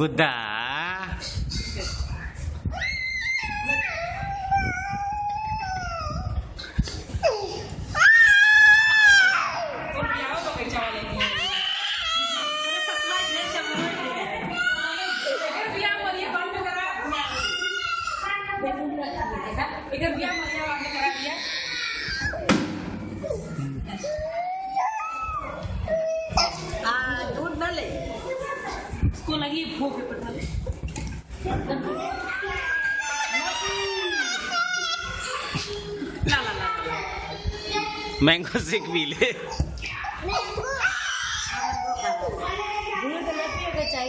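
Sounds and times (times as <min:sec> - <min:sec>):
toddler crying: 0:02.7 - 0:06.5, 0:11.2 - 0:15.9, 0:20.2 - 0:22.5, 0:23.2 - 0:26.8, 0:31.9 - 0:36.0, 0:40.2 - 0:44.0.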